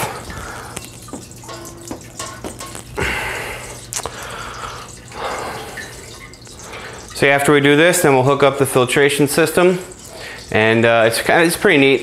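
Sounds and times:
liquid trickling into keg: 0.0 - 12.0.

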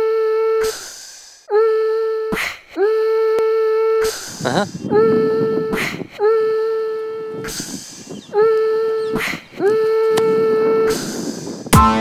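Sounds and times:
breathy hiss: 0.6 - 1.5, 6.6 - 8.1.

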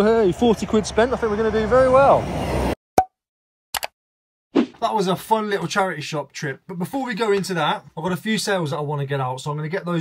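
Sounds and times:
pop sound effect: 3.0 - 3.2.

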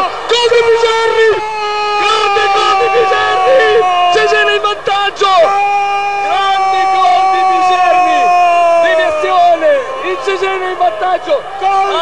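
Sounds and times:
commentator shouting goal cry: 0.0 - 12.0
crowd cheering: 0.0 - 12.0.

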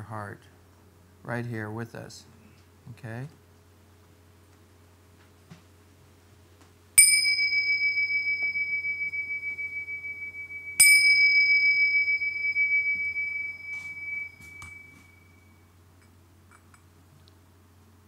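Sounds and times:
faint cymbal clinks: 7.0 - 15.7
small hand cymbals ringing: 7.0 - 15.7.

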